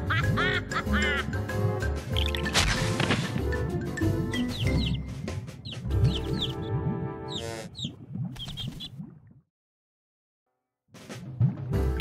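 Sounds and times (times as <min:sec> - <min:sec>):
cartoon music: 0:00.0 - 0:02.7, 0:03.4 - 0:07.9
baby chick peeping: 0:04.3 - 0:06.7, 0:07.3 - 0:08.9.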